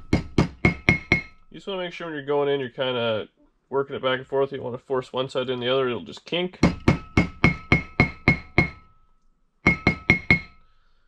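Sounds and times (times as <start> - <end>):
hammer striking metal rotor: 0.0 - 1.6, 6.6 - 8.9.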